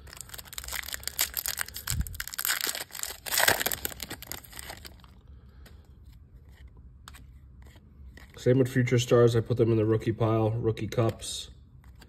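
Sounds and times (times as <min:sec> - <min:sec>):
foil pack tearing and crinkling: 0:00.0 - 0:05.1.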